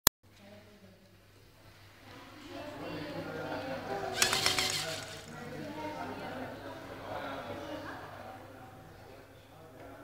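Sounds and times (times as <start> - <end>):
voices chattering: 2.6 - 7.8
plastic robot arm clicking: 4.2 - 5.3.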